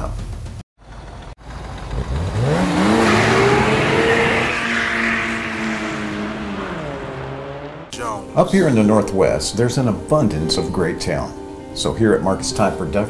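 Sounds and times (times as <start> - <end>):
car engine revving up: 1.0 - 7.9.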